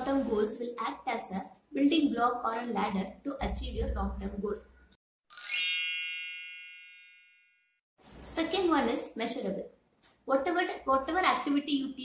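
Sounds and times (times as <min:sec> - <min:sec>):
bright ding chime: 0:05.3 - 0:07.7.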